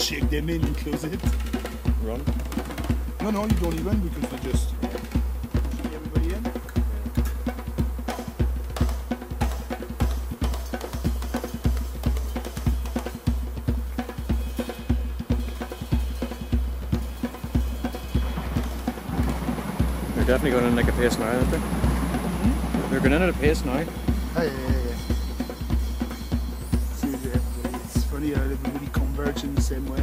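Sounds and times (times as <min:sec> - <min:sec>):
music with drum beat: 0:00.0 - 0:30.0.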